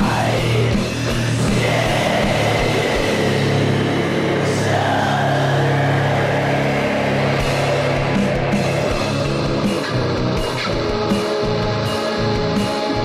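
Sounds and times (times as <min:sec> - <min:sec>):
distorted guitars: 0:00.0 - 0:13.0
drums: 0:00.0 - 0:13.0.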